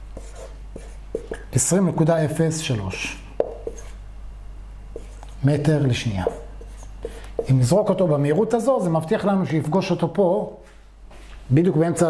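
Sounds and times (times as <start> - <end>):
marker squeaking on whiteboard: 0.2 - 1.5, 3.4 - 4.0, 5.0 - 5.4, 6.2 - 8.4
man speaking: 1.5 - 3.3, 5.4 - 6.5, 7.4 - 10.6.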